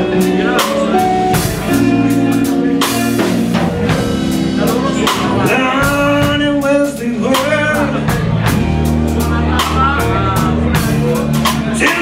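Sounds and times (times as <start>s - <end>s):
electric blues band playing: 0.0s - 12.0s
drum hits: 0.4s - 12.0s.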